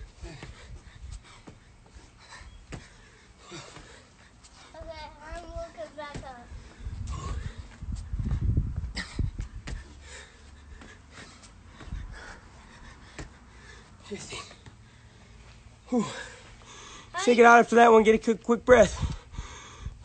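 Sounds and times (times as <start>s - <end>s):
thuds of exercise: 0.0s - 4.1s, 5.4s - 13.5s
man panting: 0.0s - 4.8s, 6.5s - 17.2s, 18.9s - 20.0s
low rumble on microphone: 6.5s - 9.9s.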